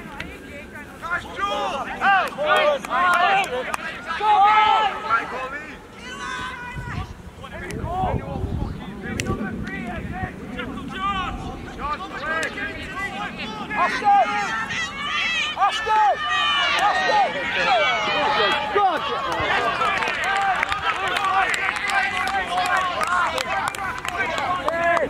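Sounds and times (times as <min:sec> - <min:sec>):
people shouting and calling: 0:00.0 - 0:08.4, 0:09.0 - 0:25.0.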